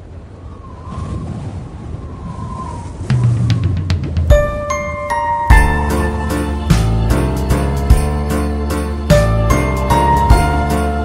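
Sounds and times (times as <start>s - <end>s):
wind blowing: 0.0s - 11.0s.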